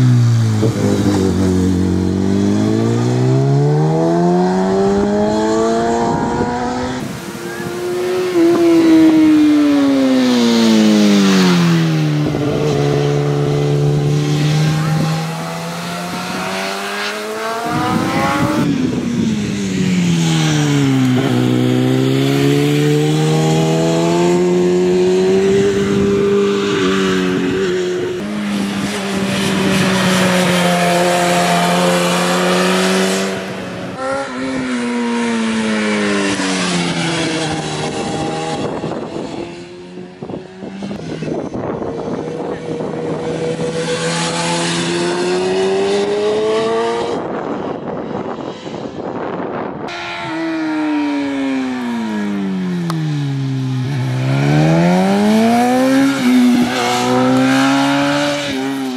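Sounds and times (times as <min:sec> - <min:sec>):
sport bike engine: 0:00.0 - 0:58.9.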